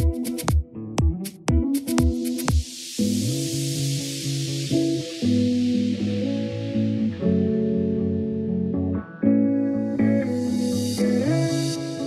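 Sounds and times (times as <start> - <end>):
sustained guitar chords music: 0.0 - 12.0
hiss: 1.8 - 7.2, 10.2 - 12.0.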